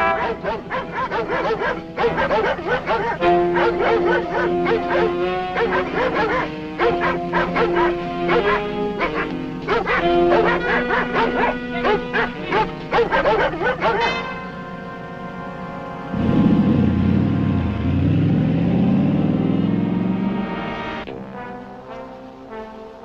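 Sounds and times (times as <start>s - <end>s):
dogs barking and yelping: 0.0s - 14.4s
music of long held notes: 0.0s - 23.0s.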